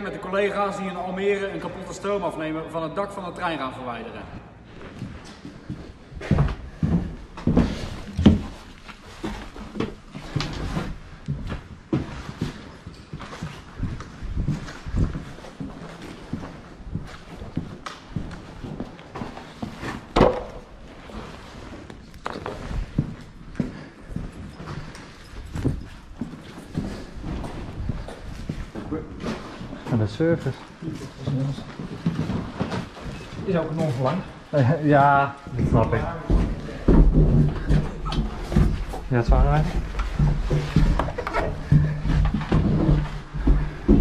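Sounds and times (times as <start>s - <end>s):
footsteps on hard floor: 4.7s - 34.5s, 35.5s - 44.0s.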